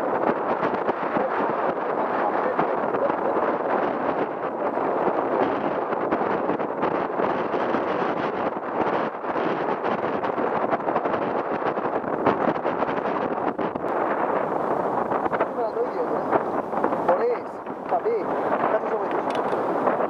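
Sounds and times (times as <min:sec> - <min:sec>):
choppy water around boat: 0:00.0 - 0:20.0
wind buffeting microphone: 0:00.0 - 0:20.0.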